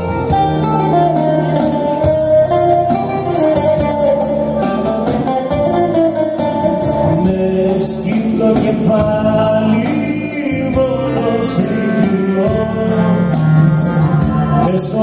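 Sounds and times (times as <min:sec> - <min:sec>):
plucked lute melody: 0:00.0 - 0:08.7
sustained keyboard accompaniment: 0:00.0 - 0:15.0.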